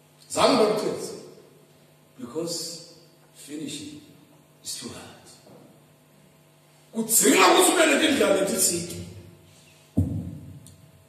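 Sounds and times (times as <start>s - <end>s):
faint steady hum: 0.0s - 11.0s
low thud: 10.0s - 10.7s.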